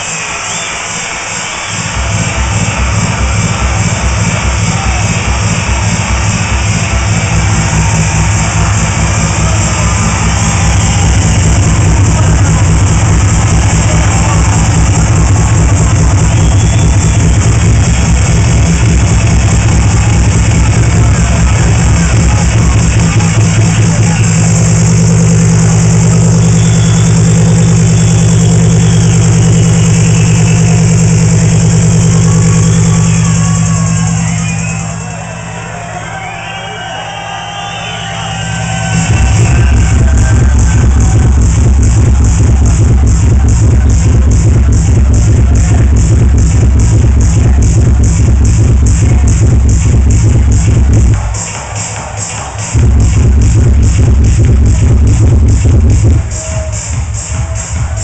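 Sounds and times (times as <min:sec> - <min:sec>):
minimal techno with kick drum: 0:01.7 - 0:36.3, 0:37.6 - 0:58.0
bass drone: 0:01.8 - 0:51.6, 0:52.5 - 0:58.0.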